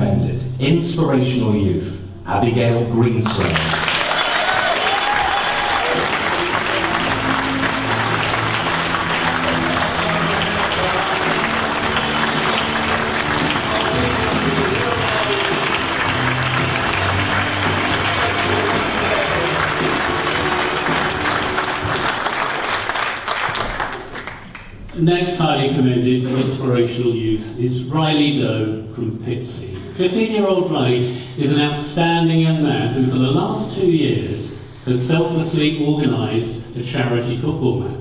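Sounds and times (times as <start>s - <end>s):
audience applauding: 3.2s - 24.9s
music playing: 3.5s - 23.8s.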